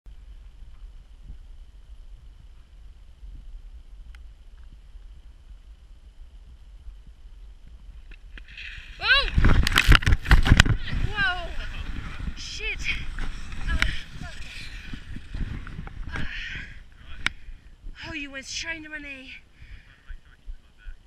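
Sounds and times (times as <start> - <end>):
knocks and rustling in snow: 7.6 - 17.3
clatter of impact in snow: 8.4 - 16.4.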